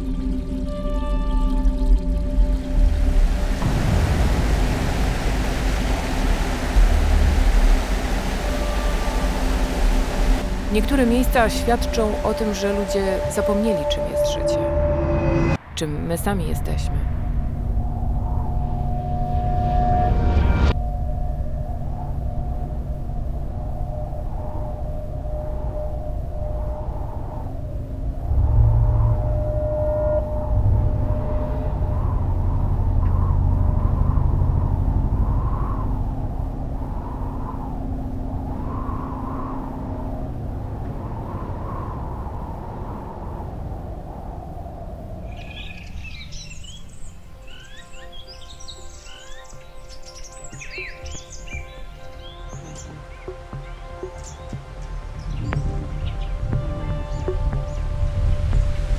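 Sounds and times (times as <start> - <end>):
low rumbling drone: 0.0 - 58.9
soft sustained tones: 0.0 - 58.9
birds chirping: 45.1 - 58.9.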